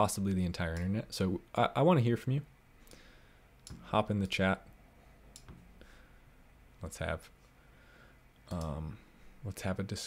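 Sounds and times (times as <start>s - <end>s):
computer mouse clicks: 5.3s - 5.6s.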